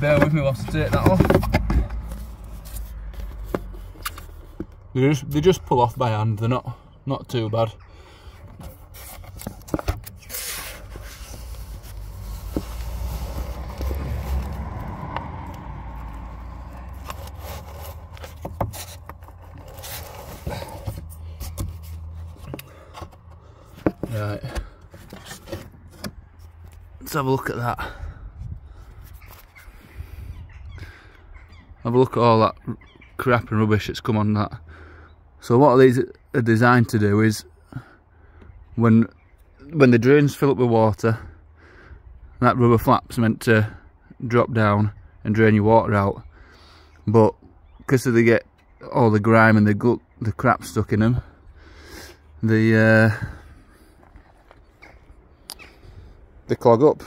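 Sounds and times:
bird calling: 0:06.8 - 0:08.8, 0:28.9 - 0:33.5, 0:53.4 - 0:56.2
rubber valve handling rustle: 0:08.4 - 0:14.5, 0:16.8 - 0:27.0.

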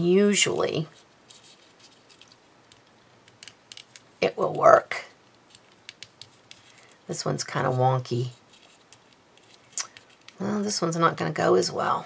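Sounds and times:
paper clicks and crinkles: 0:01.2 - 0:04.1, 0:08.2 - 0:10.4.

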